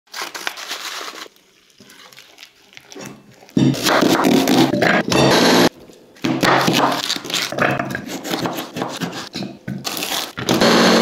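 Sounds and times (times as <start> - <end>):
paper pouch crinkling: 0.1 - 3.6.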